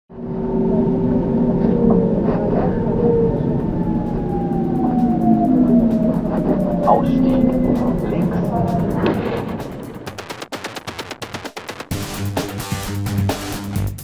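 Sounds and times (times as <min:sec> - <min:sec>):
train rumble: 0:00.1 - 0:10.5
voices: 0:00.6 - 0:10.0.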